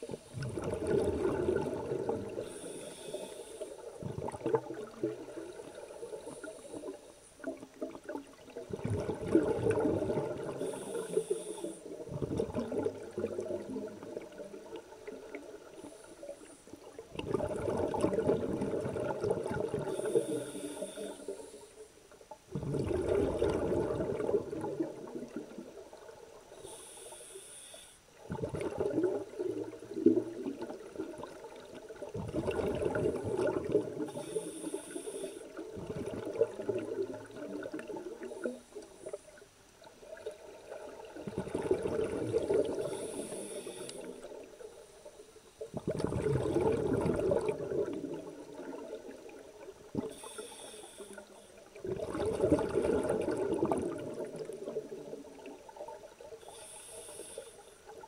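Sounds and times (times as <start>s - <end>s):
exhaled bubbles gurgling underwater: 0.0s - 58.0s
regulator hiss: 2.4s - 3.9s, 10.6s - 12.0s, 19.9s - 21.9s, 26.5s - 28.1s, 34.1s - 35.6s, 42.8s - 45.6s, 50.1s - 51.6s, 56.4s - 57.8s.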